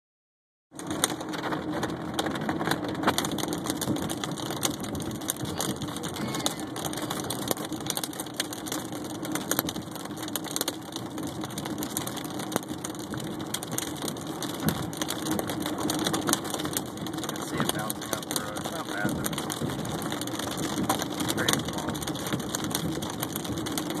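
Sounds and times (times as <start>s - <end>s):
car engine and road noise: 0.7s - 24.0s
hailstones hitting car roof: 0.8s - 24.0s.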